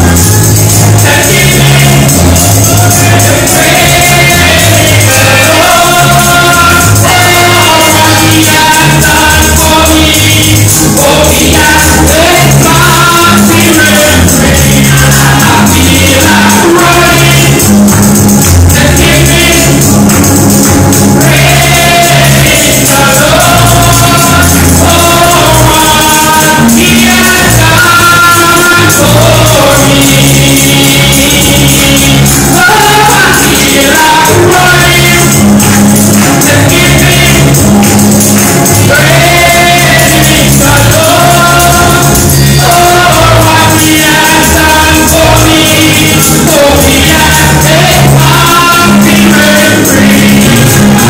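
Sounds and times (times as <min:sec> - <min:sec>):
group singing gospel: 0:00.0 - 0:51.0
instrumental backing: 0:00.0 - 0:51.0
sustained bass notes: 0:00.0 - 0:51.0
tambourine: 0:00.0 - 0:51.0.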